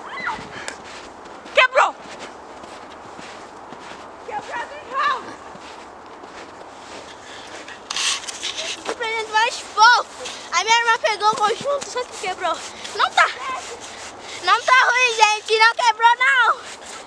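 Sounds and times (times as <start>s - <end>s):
outdoor background hiss: 0.0s - 17.0s
digging in snow crunching: 0.1s - 17.0s
child calling out: 4.3s - 5.4s.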